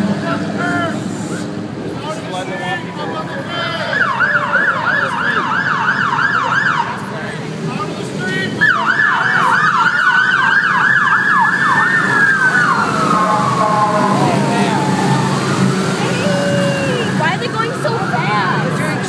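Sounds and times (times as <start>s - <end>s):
siren wailing: 3.8s - 7.1s, 8.5s - 19.0s
siren yelping: 3.8s - 7.1s, 8.6s - 19.0s.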